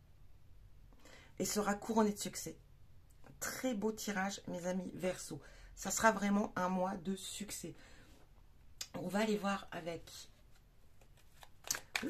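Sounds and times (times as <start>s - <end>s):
cards rustling: 10.4s - 12.0s
card clicks: 11.0s - 12.0s.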